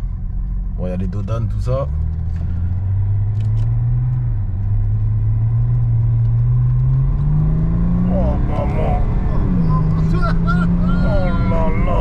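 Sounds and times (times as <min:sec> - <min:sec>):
diesel engine accelerating from inside car: 0:00.0 - 0:12.0.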